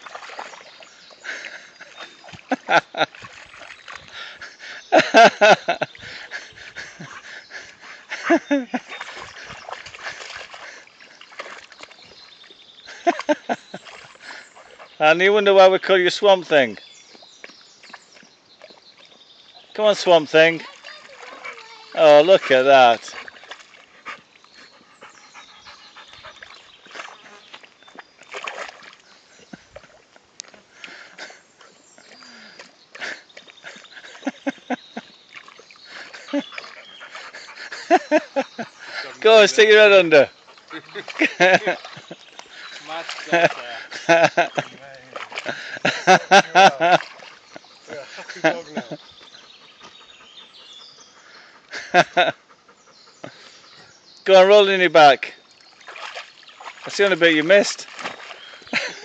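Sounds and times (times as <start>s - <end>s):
splashes of muddy water: 0.0s - 49.4s, 54.5s - 59.0s
dog panting: 6.0s - 11.2s, 21.0s - 27.3s, 35.9s - 39.3s, 40.0s - 43.9s, 47.2s - 54.0s.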